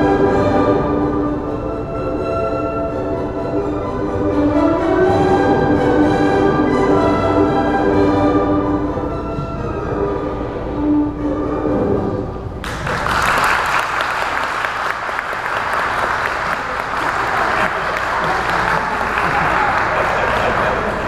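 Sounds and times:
orchestral music: 0:00.0 - 0:13.1
audience applause: 0:12.6 - 0:21.0.

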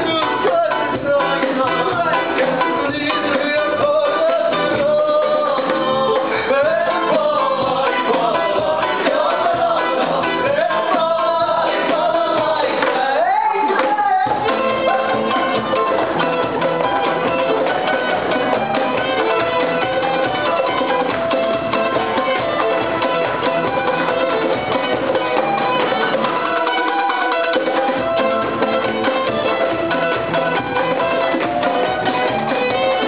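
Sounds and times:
acoustic guitar strumming: 0:00.0 - 0:33.0
cajon beat: 0:00.0 - 0:33.0.

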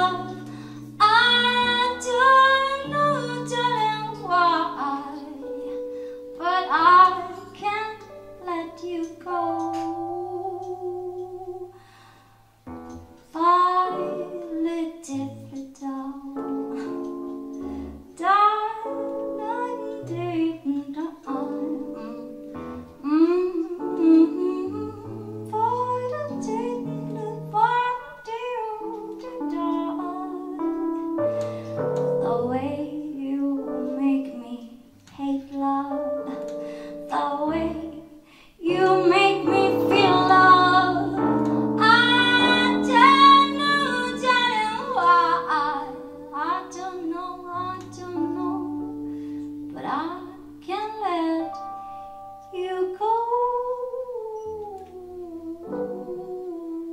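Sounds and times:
woman singing a slow jazz song: 0:00.0 - 0:12.0, 0:13.2 - 0:51.8, 0:52.4 - 0:56.9.

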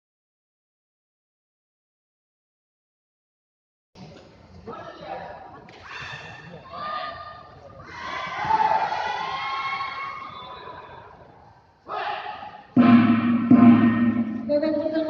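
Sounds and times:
voices echoing in a hall: 0:04.0 - 0:15.0.

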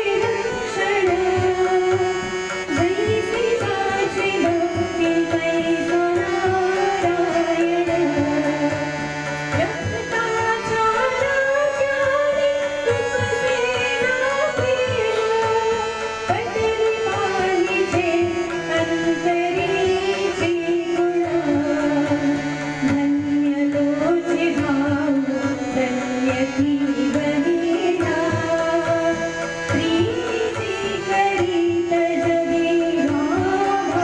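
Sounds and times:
woman singing: 0:00.0 - 0:34.0
hand-drum rhythm: 0:00.8 - 0:34.0.

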